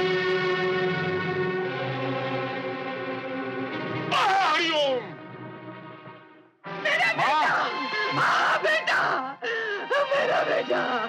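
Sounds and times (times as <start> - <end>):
film music with held tones: 0.0 - 11.0
woman crying out and wailing: 7.4 - 11.0.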